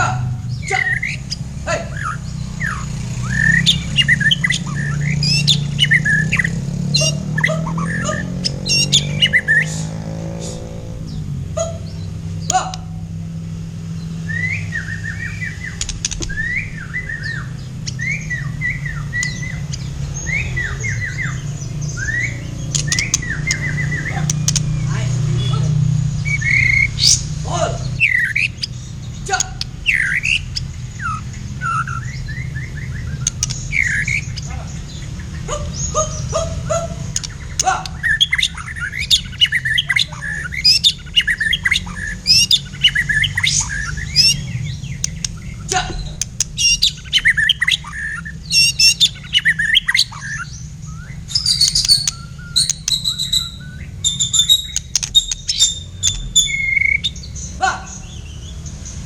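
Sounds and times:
songbird chirping and whistling: 0.0 - 13.2, 13.9 - 59.0.

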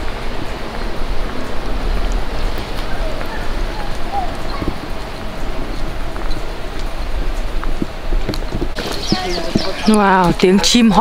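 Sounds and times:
footsteps on pavement: 0.0 - 11.0
small birds chirping: 0.0 - 11.0.

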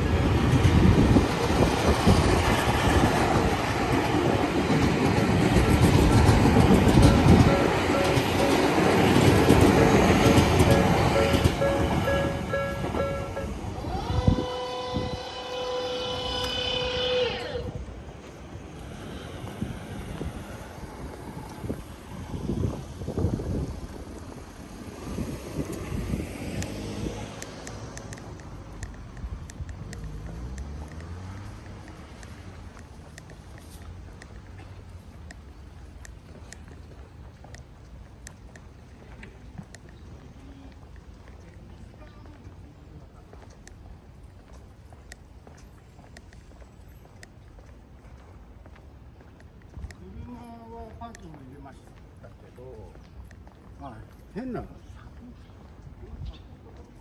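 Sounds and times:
train wheels rumbling on rails: 0.0 - 51.8
street sound: 0.0 - 57.0.

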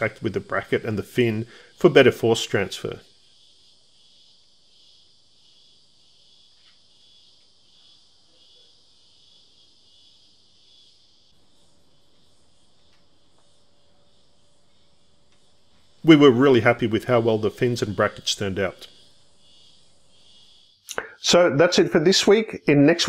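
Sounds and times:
high-pitched insect chorus: 0.0 - 23.0
faint small ticks: 6.5 - 7.6, 12.7 - 13.6, 15.3 - 15.9.

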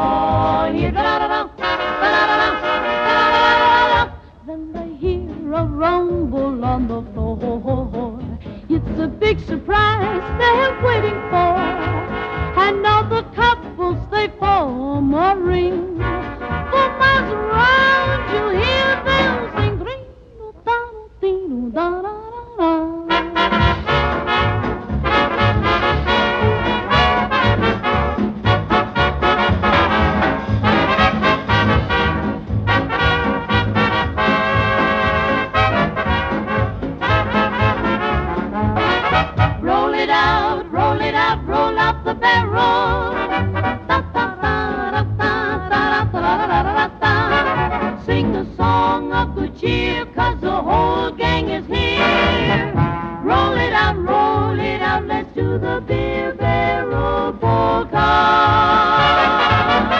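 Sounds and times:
dance band playing a polka: 0.0 - 4.3, 8.2 - 13.7, 15.8 - 19.8, 23.1 - 59.9.

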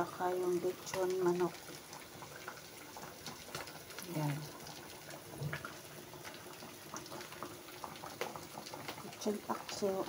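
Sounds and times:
food bubbling and simmering: 0.0 - 10.0
small pops and crackles: 0.7 - 10.0.

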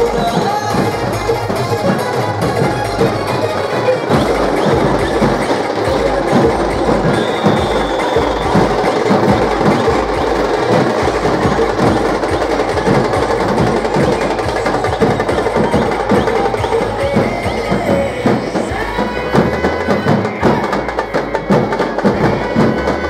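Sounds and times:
procession drumming: 0.0 - 23.0.

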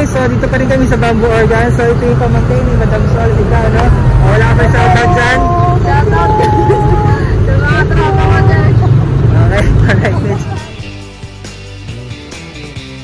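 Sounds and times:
loud low rumble: 0.0 - 11.4
voices calling out goodbyes: 2.4 - 11.4.

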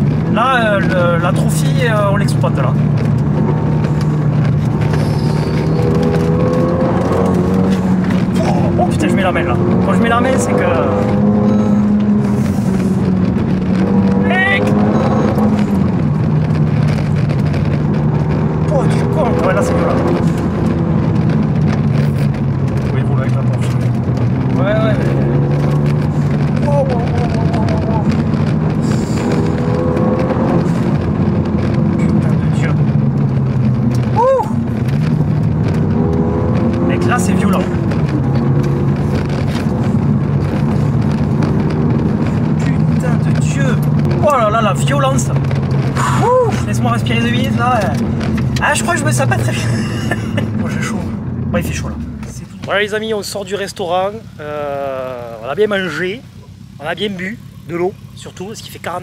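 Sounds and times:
car engine from inside cabin: 0.0 - 59.0.

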